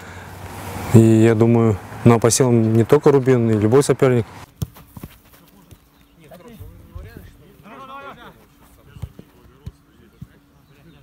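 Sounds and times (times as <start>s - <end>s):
distant players calling out: 0.0s - 4.4s, 5.6s - 11.0s
footballs being kicked: 2.5s - 7.3s, 8.7s - 10.4s.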